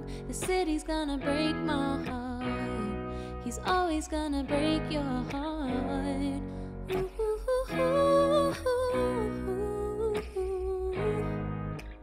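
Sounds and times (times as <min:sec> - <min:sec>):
woman singing wordless melody: 0:00.0 - 0:11.8
acoustic guitar chords: 0:00.0 - 0:12.0.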